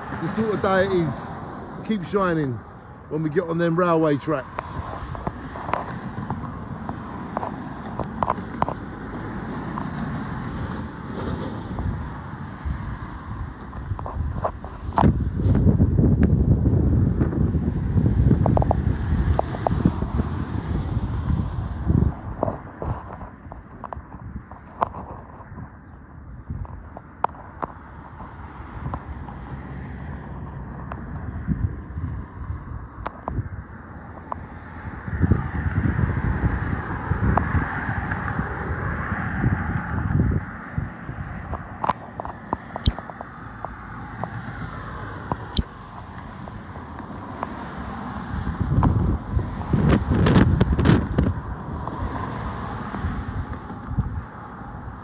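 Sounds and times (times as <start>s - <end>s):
traffic hum: 0.0s - 55.0s
wind buffeting microphone: 0.0s - 55.0s.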